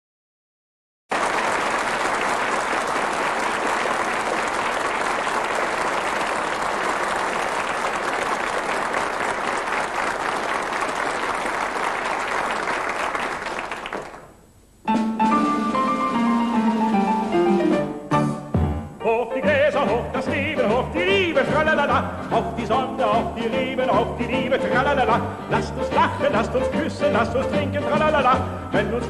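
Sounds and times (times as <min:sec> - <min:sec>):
audience applauding: 0:01.1 - 0:14.4.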